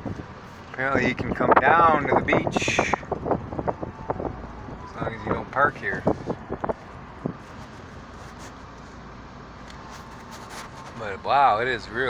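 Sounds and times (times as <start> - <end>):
car engine: 0.0 - 12.0
road rumble: 0.0 - 12.0
wind: 0.0 - 12.0.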